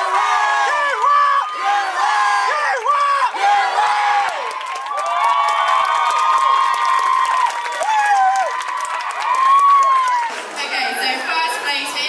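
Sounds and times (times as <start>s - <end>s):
crowd screaming and cheering: 0.0s - 12.0s
steady clapping: 4.2s - 10.6s.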